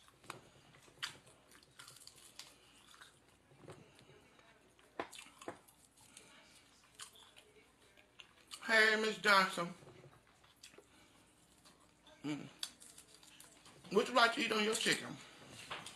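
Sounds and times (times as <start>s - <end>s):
person chewing: 0.0s - 8.6s, 9.9s - 13.9s.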